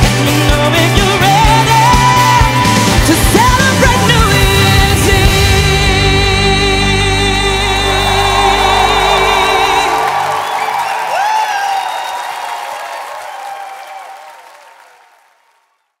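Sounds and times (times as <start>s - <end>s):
person singing with vibrato: 0.0s - 10.5s
audience applause and cheering: 2.4s - 16.0s
band holding final chord: 3.8s - 11.0s
audience whoops: 7.5s - 15.9s.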